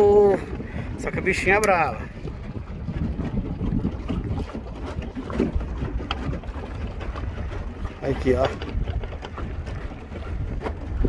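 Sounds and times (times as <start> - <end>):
water splashing against boat hull: 0.0 - 11.0
wind buffeting microphone: 0.0 - 11.0.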